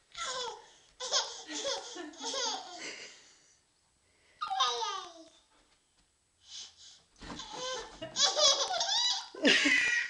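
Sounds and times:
baby laughing: 0:00.2 - 0:02.9, 0:07.3 - 0:10.0.

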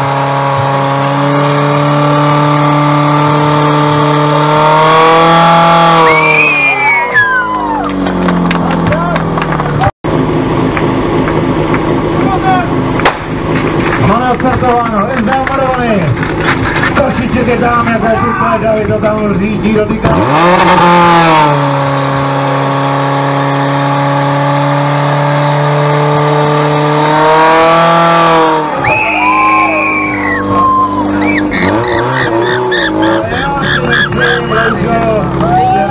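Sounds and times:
pump engine droning: 0:00.0 - 0:35.9
person calling out: 0:30.9 - 0:34.9.

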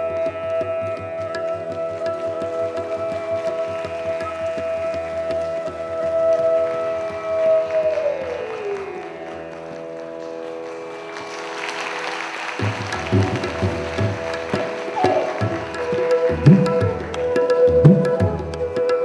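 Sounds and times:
bamboo flute: 0:00.0 - 0:09.8, 0:12.6 - 0:19.0
tabla strokes: 0:00.0 - 0:19.0
audience applause: 0:06.6 - 0:17.8.

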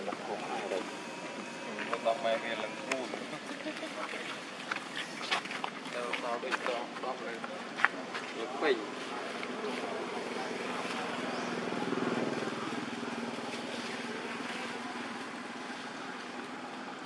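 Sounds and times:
vehicle engine passing: 0:08.8 - 0:15.9.

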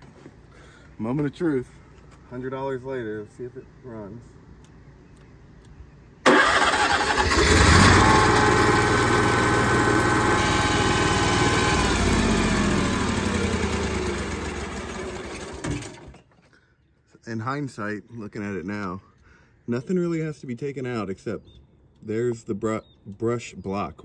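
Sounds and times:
generator running: 0:06.2 - 0:16.2.

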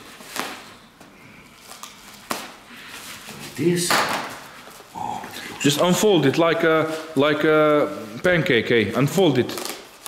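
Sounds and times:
bubble wrap rustling and crackling: 0:00.0 - 0:10.0
sharp crack: 0:03.8 - 0:04.4.

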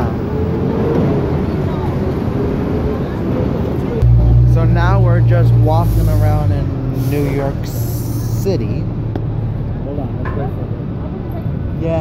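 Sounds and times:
cars passing: 0:00.0 - 0:12.0
city street traffic rumble: 0:00.0 - 0:12.0.

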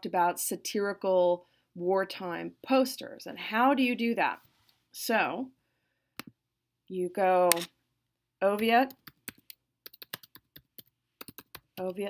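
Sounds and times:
computer keyboard typing: 0:08.9 - 0:12.0.

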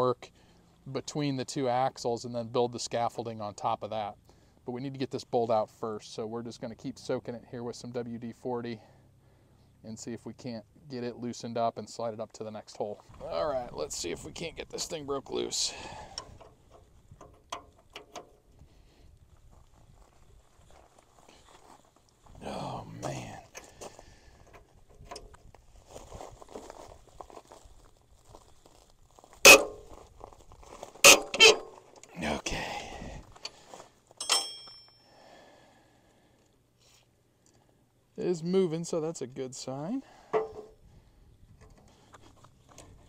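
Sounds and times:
wrench and steel parts clanking: 0:16.0 - 0:18.5, 0:29.5 - 0:29.9, 0:31.0 - 0:32.1, 0:34.2 - 0:35.0, 0:40.4 - 0:40.7
sharp metal knocks: 0:29.5 - 0:29.8, 0:31.0 - 0:31.7, 0:40.4 - 0:40.8
ringing metallic clink: 0:34.2 - 0:35.1
faint clicks and scuffs: 0:41.8 - 0:43.0.

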